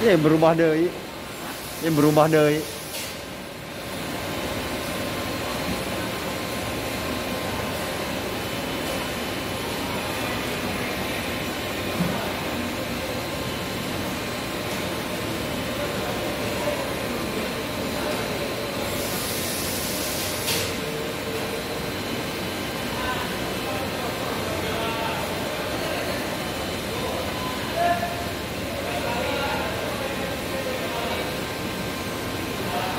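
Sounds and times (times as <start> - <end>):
strong hiss: 1.4 - 3.2.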